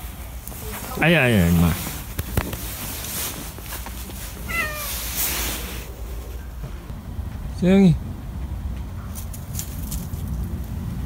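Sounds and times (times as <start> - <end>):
cat meowing: 4.4 - 5.6.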